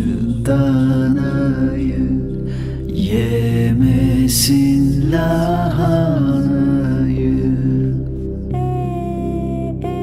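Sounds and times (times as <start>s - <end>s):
soft sustained backing: 0.0s - 10.0s.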